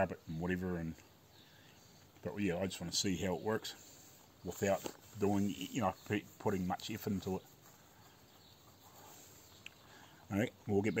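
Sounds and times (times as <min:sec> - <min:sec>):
small tick: 0:09.6 - 0:09.8.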